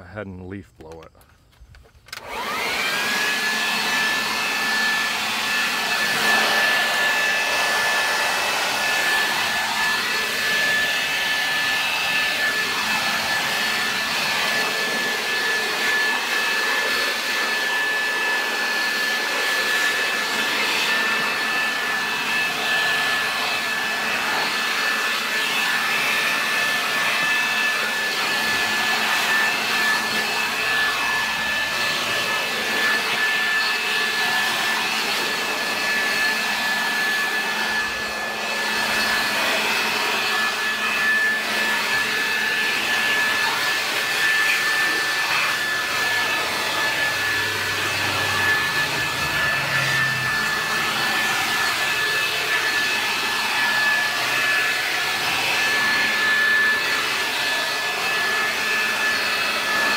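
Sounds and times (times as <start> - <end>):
leaf blower running: 2.1 - 59.9.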